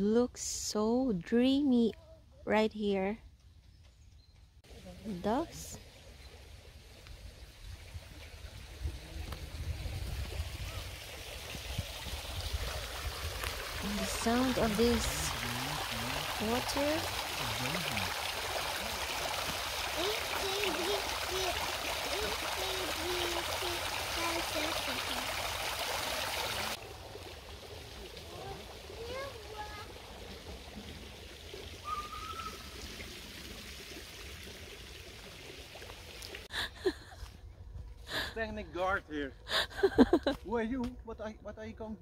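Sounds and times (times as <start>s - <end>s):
fountain water splashing into pond: 4.7s - 36.5s
faint calls: 31.8s - 32.9s.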